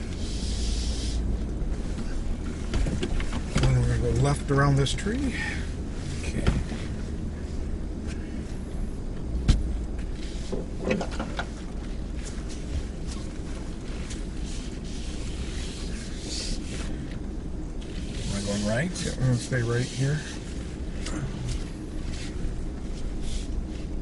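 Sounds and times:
engine and tyres rumbling: 0.0s - 24.0s.

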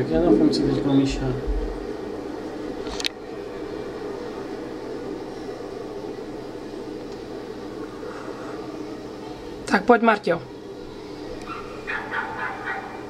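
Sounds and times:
indoor hall hum and hiss: 0.0s - 13.0s.

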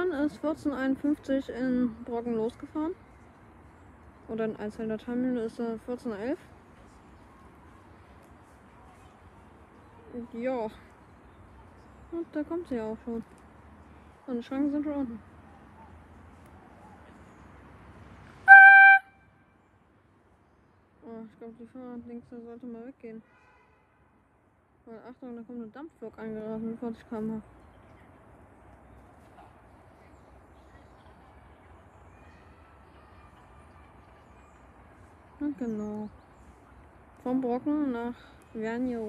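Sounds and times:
quiet outdoor ambience: 0.0s - 39.0s
steam whistle blast: 18.5s - 19.1s.

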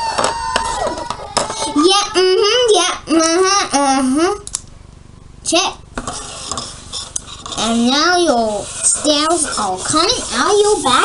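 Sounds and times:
child singing wordless tune: 7.6s - 11.0s.

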